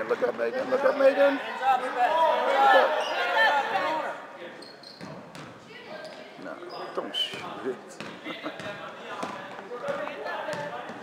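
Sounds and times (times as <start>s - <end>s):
voices shouting: 0.9s - 4.2s
basketball bouncing on wooden floor: 5.0s - 5.5s, 8.0s - 11.0s.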